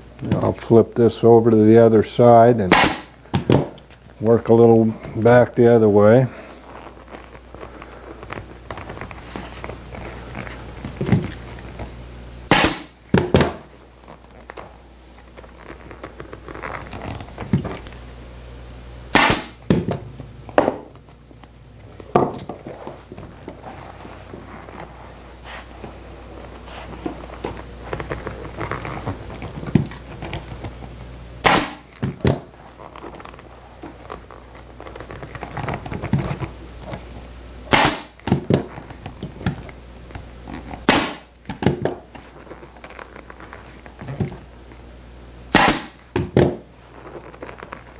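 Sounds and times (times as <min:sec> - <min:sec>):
steady low hum: 0:00.0 - 0:47.9
staple gun firing: 0:02.7 - 0:03.1, 0:45.6 - 0:45.9
vinyl cover handled: 0:03.2 - 0:12.1, 0:21.8 - 0:30.9, 0:41.4 - 0:44.5, 0:46.1 - 0:47.9.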